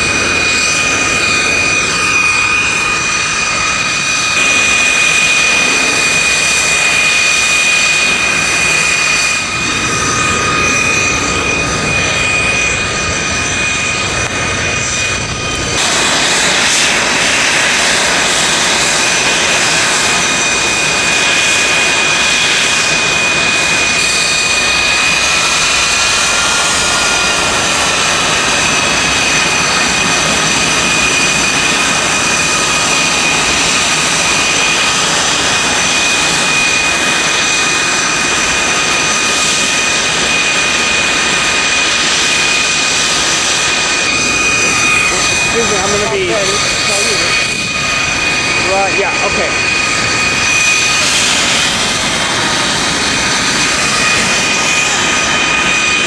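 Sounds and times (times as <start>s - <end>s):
jet engines whining: 0.0s - 56.0s.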